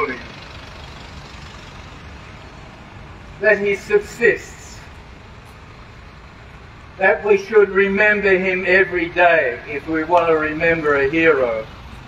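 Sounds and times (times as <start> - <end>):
man speaking: 0.0 - 0.3, 3.4 - 4.9, 7.0 - 11.7
outdoor low rumble and hiss: 1.9 - 12.0.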